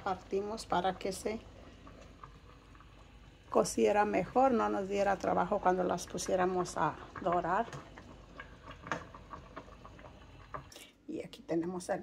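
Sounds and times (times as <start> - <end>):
sauce boiling in a pot: 0.0 - 12.0.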